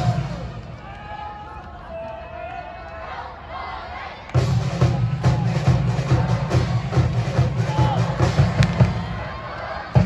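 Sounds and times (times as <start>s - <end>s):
drums beating in a rhythm: 4.4s - 10.0s.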